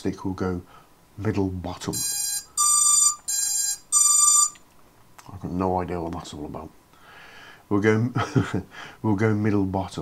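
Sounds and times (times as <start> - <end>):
electronic beeper two-tone beeps: 2.0 - 4.6.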